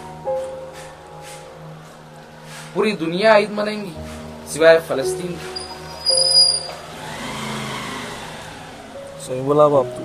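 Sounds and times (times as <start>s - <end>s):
motor vehicle passing by: 5.4s - 9.8s.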